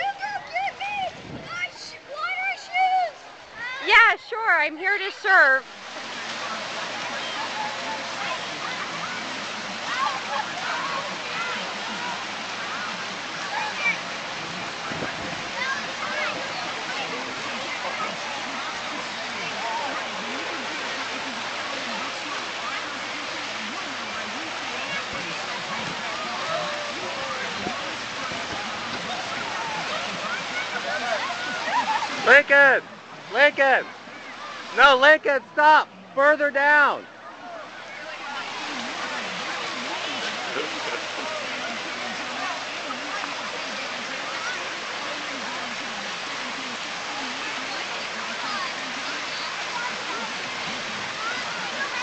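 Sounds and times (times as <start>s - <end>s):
water rushing over weir: 0.0s - 52.0s
distant voices and shouts: 6.3s - 45.1s.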